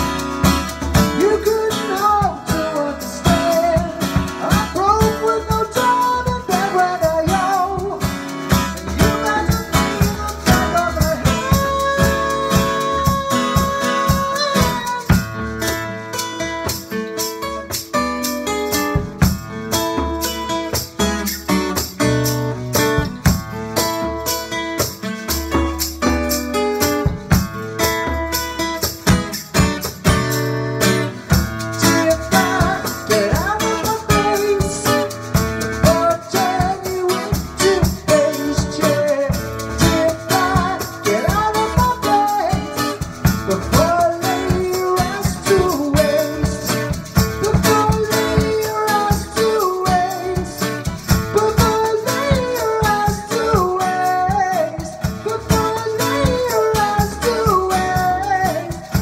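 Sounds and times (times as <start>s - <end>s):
man singing: 0.0s - 17.3s, 28.9s - 59.0s
acoustic guitar strumming: 0.0s - 59.0s
percussion beat: 0.0s - 59.0s.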